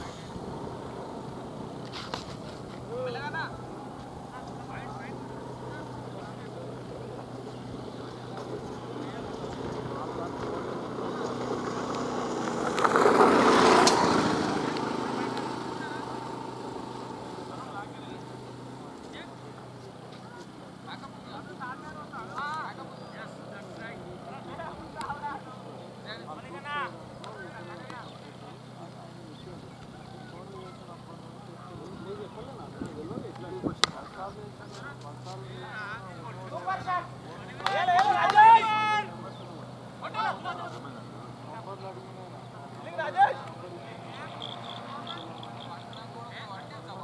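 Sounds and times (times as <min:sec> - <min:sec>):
low steady hum: 0:00.0 - 0:13.2
vehicle passing by: 0:00.0 - 0:29.3, 0:39.5 - 0:47.0.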